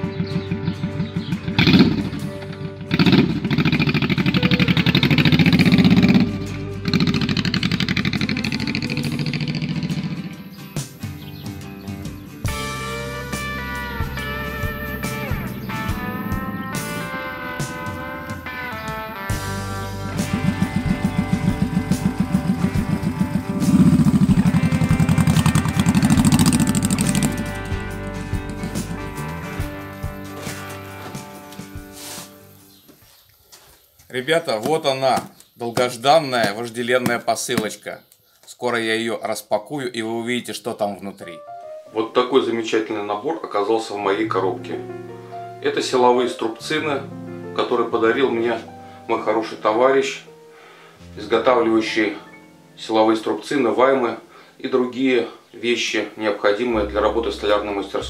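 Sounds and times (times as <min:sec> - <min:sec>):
motorcycle engine revving: 0:00.0 - 0:31.9
guitar music: 0:00.0 - 0:32.8, 0:41.4 - 0:42.0, 0:44.1 - 0:52.9, 0:56.6 - 0:58.0.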